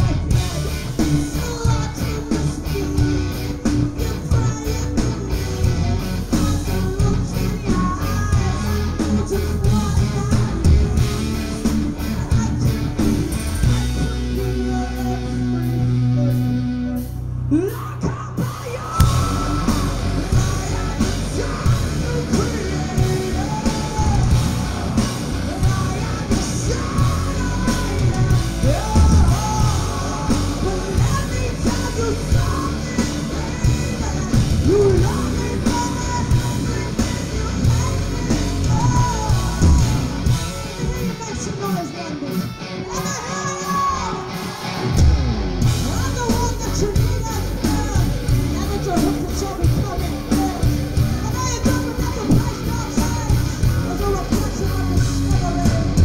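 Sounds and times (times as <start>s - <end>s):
steady drum beat: 0.0s - 14.8s, 19.0s - 42.3s, 43.0s - 56.0s
woman singing: 0.0s - 16.0s, 17.5s - 42.1s, 45.8s - 56.0s
electric guitar: 0.0s - 56.0s
heavy bass: 0.0s - 56.0s
heavy metal band playing: 0.0s - 56.0s.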